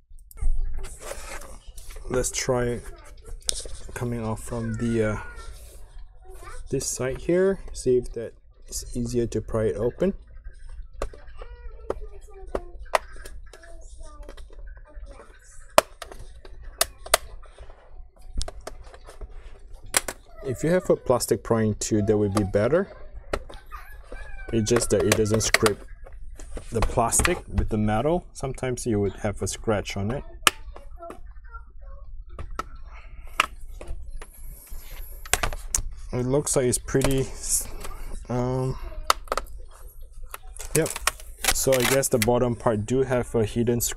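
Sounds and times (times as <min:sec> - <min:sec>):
metal tool scraping plastic: 0:40.3 - 0:42.3
plastic snapping and cracking: 0:40.3 - 0:42.3.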